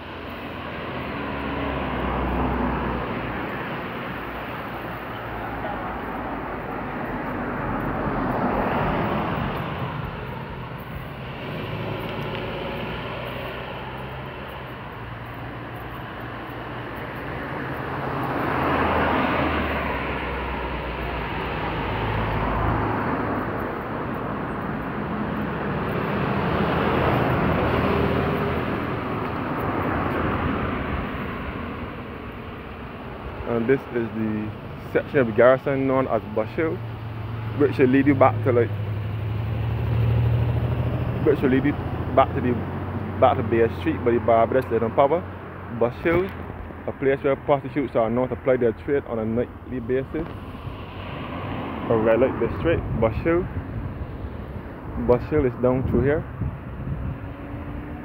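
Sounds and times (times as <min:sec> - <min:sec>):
cars passing: 0:00.0 - 0:58.0.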